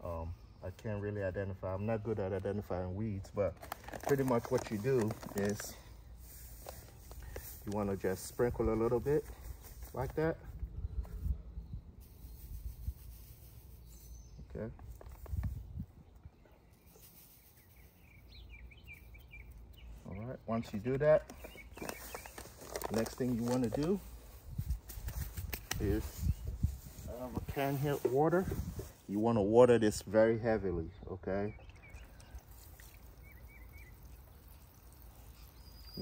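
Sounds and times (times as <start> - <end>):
bird chirping: 9.4 - 27.9, 29.4 - 36.0
water spraying onto grass: 32.2 - 36.0.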